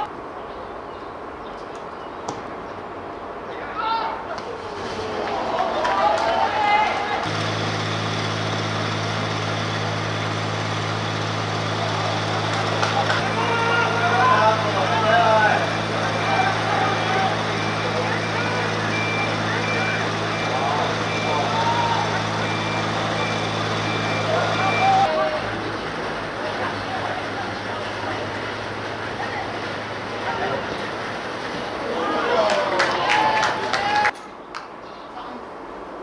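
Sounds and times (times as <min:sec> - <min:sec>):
players shouting: 0:03.5 - 0:34.2
low engine hum: 0:04.6 - 0:34.1
high electronic beep: 0:17.5 - 0:21.4, 0:22.4 - 0:25.1.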